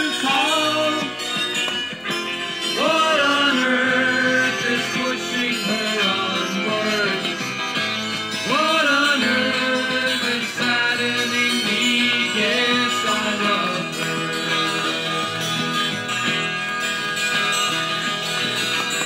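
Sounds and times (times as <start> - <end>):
folk guitar instrumental: 0.0 - 19.0.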